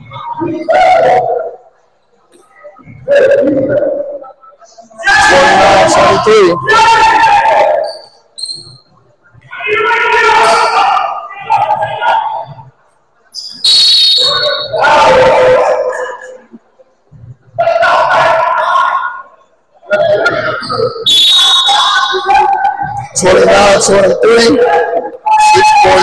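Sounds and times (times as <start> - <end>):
voices calling out loudly: 2.4 - 16.6, 17.5 - 26.0.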